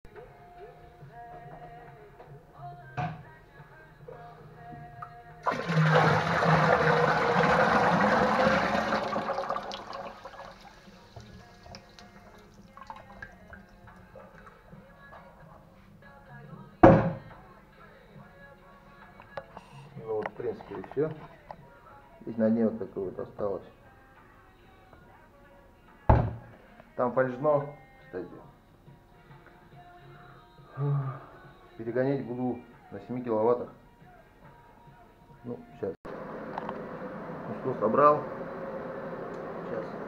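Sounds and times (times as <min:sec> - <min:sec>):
liquid pouring into metal pot: 0:05.4 - 0:14.6.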